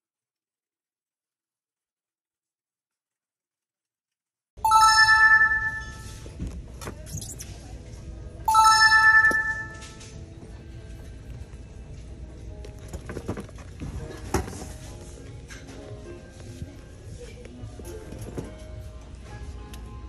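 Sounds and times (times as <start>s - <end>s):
electronic chime: 4.6s - 6.2s, 8.5s - 10.0s
store background noise: 4.6s - 20.0s.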